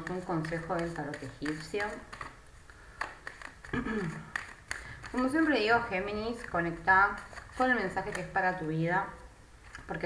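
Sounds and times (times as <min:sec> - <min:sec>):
cards rustling while shuffled: 0:00.0 - 0:08.5.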